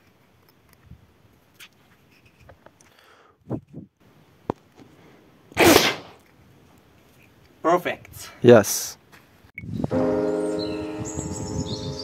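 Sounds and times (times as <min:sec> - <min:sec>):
balloon bursting: 0:05.6 - 0:06.2.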